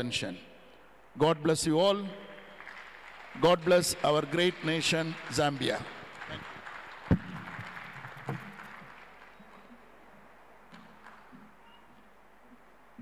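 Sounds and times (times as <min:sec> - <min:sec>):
audience applause: 0:02.6 - 0:09.4.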